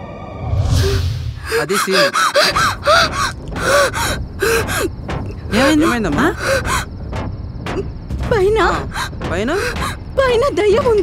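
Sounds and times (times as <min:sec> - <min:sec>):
woman panting: 0:01.4 - 0:06.9, 0:08.9 - 0:10.0.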